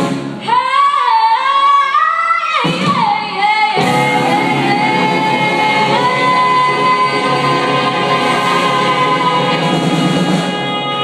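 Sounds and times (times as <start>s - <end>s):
rhythm and blues band playing: 0.0s - 0.6s, 2.6s - 11.0s
woman singing: 0.4s - 11.0s.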